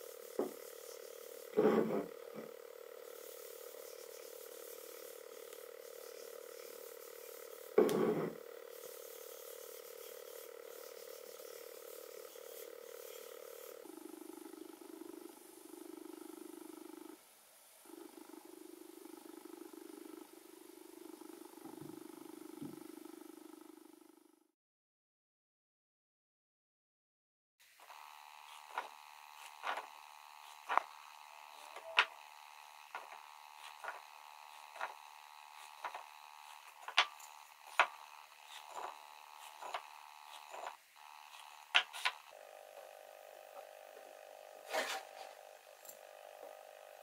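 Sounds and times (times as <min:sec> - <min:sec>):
faint steady hum: 0:00.0 - 0:24.5, 0:27.6 - 0:47.0.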